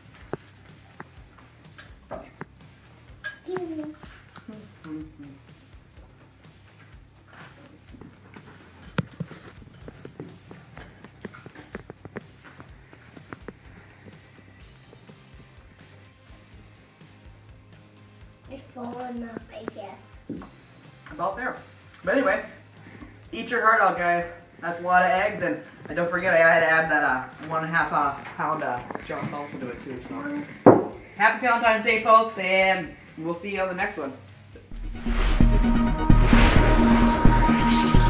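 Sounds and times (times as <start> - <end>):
quiet background music: 0.0 - 38.0
tableware clinking: 1.6 - 2.4, 3.2 - 3.6, 8.6 - 11.6
young child's voice: 3.4 - 4.7, 18.5 - 20.1.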